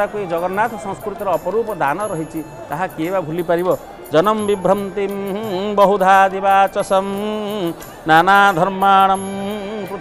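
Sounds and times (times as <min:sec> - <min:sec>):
person chanting devotional song: 0:00.0 - 0:10.0.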